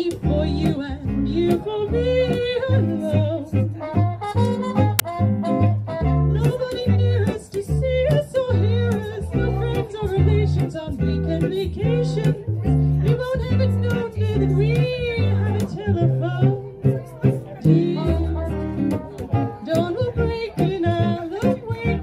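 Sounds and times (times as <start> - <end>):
woman singing with vibrato: 0.0 - 4.2, 6.3 - 22.0
acoustic guitar: 0.0 - 22.0
plucked double bass: 0.0 - 22.0.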